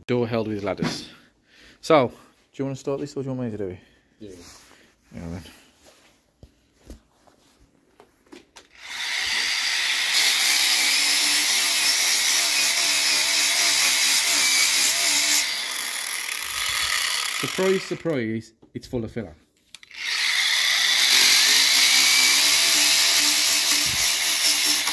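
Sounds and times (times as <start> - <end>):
angle grinder sanding: 8.8 - 18.0, 20.0 - 24.9.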